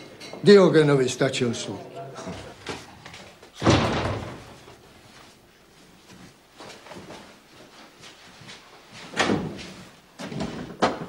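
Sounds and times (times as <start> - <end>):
wooden door slamming: 3.6 - 4.6, 9.2 - 9.6.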